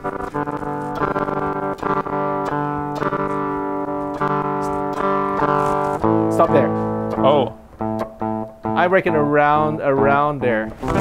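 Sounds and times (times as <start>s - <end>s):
electric guitar playing clean chords: 0.0s - 11.0s.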